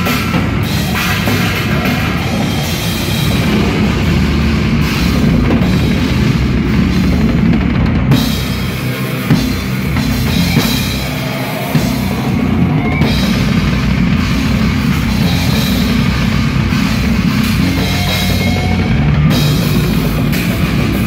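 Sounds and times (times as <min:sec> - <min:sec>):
death metal band playing live: 0:00.0 - 0:21.0
drumming with bass drum and cymbals: 0:00.0 - 0:21.0.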